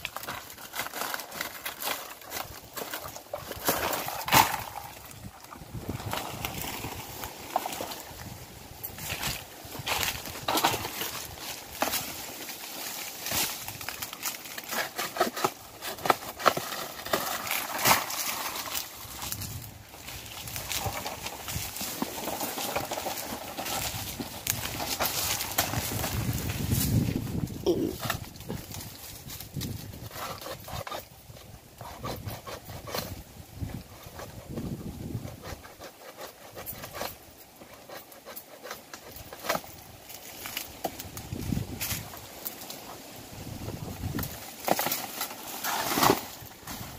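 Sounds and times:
rustling palm fronds: 0.0s - 46.9s
person's voice: 27.6s - 28.0s.

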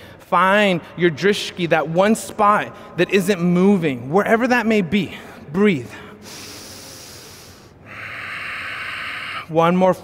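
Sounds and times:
person breathing: 5.3s - 9.5s.

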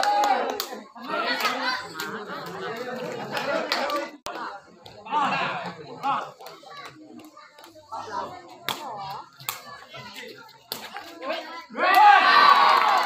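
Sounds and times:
spectators shouting and cheering: 0.0s - 4.1s, 11.3s - 13.0s.

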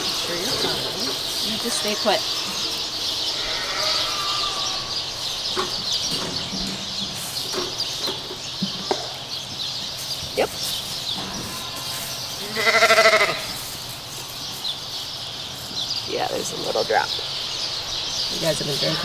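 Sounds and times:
sheep bleating: 3.3s - 4.9s, 11.5s - 13.6s.

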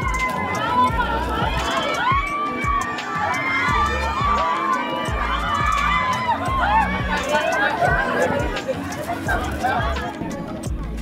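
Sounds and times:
crowd calling and shouting: 0.0s - 11.0s.

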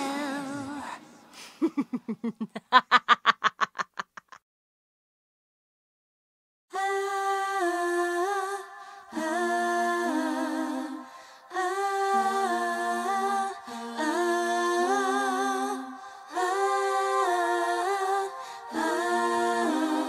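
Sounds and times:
women singing in harmony: 0.0s - 1.3s, 6.7s - 20.0s.

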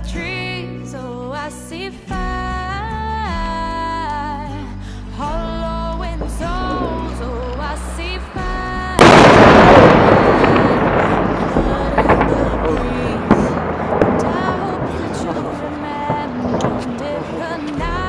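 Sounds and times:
crackling: 6.0s - 18.0s
sharp bangs: 6.4s - 18.0s
large explosion: 8.9s - 18.0s.

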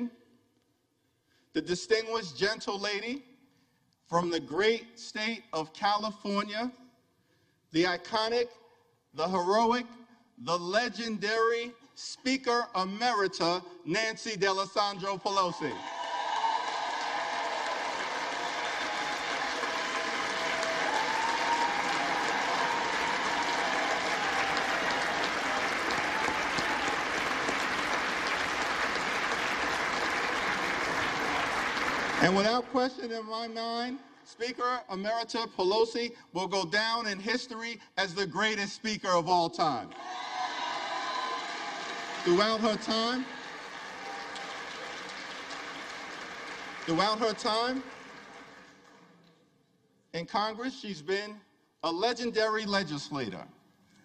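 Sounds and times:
crowd applause: 15.5s - 32.7s, 40.0s - 49.1s
faint cheering voices: 15.7s - 27.7s.

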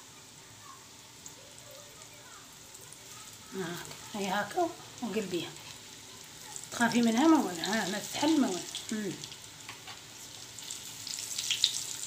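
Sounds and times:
fritters sizzling in hot oil: 0.0s - 12.0s.

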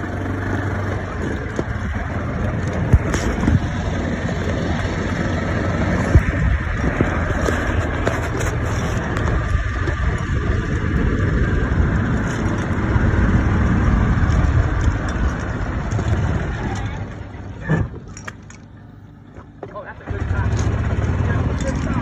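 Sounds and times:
wind rushing over microphone: 0.0s - 18.1s
golf cart driving: 0.0s - 22.0s.

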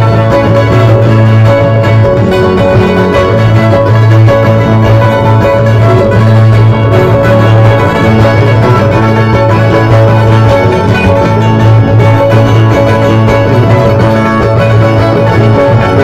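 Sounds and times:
heavy bass: 0.0s - 16.0s
string band dance music: 0.0s - 16.0s.

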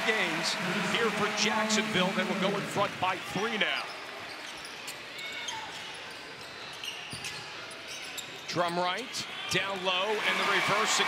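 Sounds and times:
sneaker squeaks on hardwood: 4.3s - 8.5s.

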